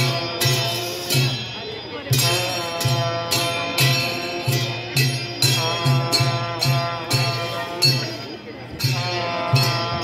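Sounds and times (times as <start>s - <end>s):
clashing hand cymbals: 0.0s - 10.0s.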